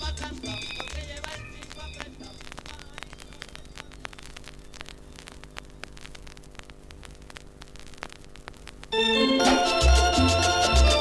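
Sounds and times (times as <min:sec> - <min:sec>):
music from record: 0:00.0 - 0:11.0
record player hum: 0:00.0 - 0:11.0
vinyl surface crackle: 0:00.0 - 0:11.0.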